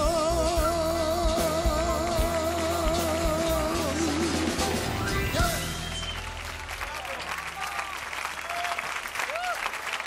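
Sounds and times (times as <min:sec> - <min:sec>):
man singing with vibrato: 0:00.0 - 0:05.9
backing band playing: 0:00.0 - 0:08.3.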